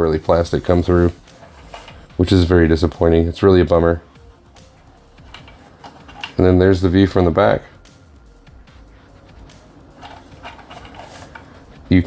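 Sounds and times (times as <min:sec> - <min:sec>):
plastic toy handling noise: 0:01.0 - 0:02.1, 0:05.2 - 0:06.4, 0:10.0 - 0:11.6
man's voice: 0:02.2 - 0:04.1, 0:06.4 - 0:07.8.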